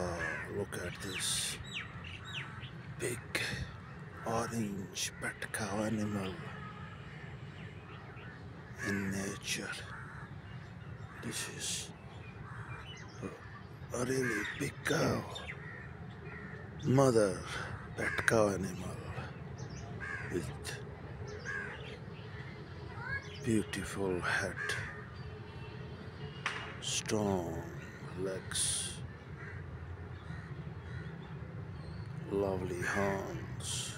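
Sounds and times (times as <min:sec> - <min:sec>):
faint bird calls: 0:00.0 - 0:33.9
low background noise: 0:00.0 - 0:33.9.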